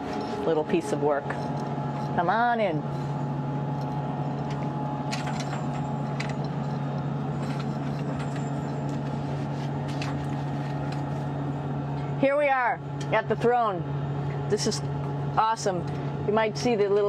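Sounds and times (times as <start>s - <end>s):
ventilation fans humming: 0.0s - 17.0s.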